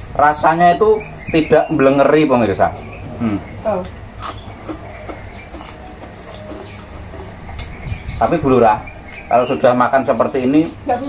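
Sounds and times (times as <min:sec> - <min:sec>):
crunchy chewing: 0:03.1 - 0:07.8.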